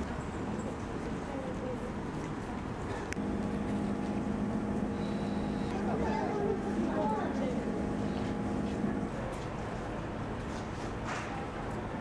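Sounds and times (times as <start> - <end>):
low mechanical hum: 0.0 - 12.0
faint voices: 5.0 - 9.9.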